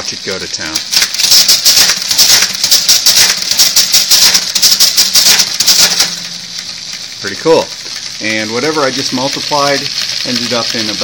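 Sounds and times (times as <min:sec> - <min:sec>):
calculator mechanical clatter: 0:00.0 - 0:11.0
motor hum: 0:01.4 - 0:11.0.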